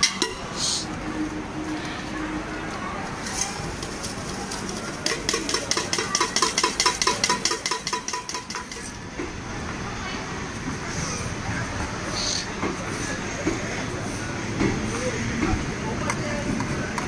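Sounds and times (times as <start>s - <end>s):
busy platform noise: 0.0s - 17.0s
spoon rattling in steel tin: 4.5s - 8.9s.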